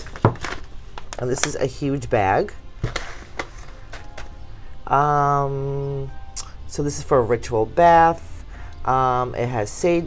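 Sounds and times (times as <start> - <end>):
paper rustling and clicks: 0.0 - 1.6, 2.8 - 4.3.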